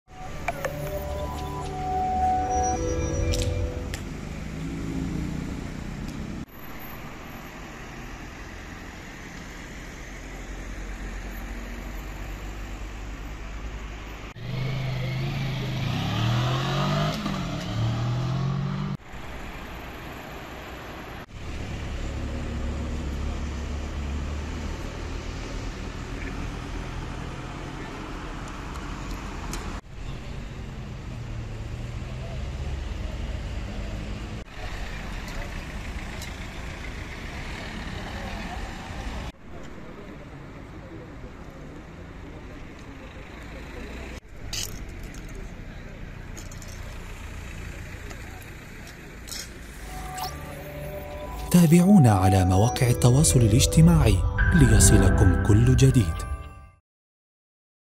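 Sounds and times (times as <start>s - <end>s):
tones gliding up and down: 0.1s - 4.3s, 49.7s - 56.8s
rumble of passing cars: 0.1s - 50.0s
people's voices: 49.8s - 56.4s.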